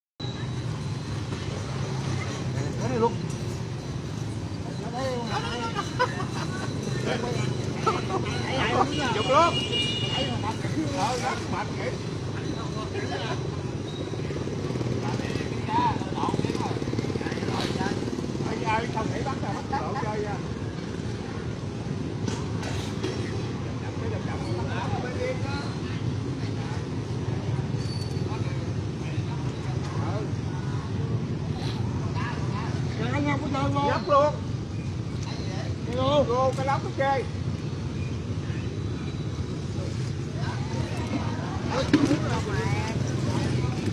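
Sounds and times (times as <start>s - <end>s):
motorbike engines droning: 0.2s - 43.9s
road traffic rumble: 0.2s - 43.9s
people talking: 4.6s - 13.6s, 14.9s - 20.6s, 39.7s - 43.9s.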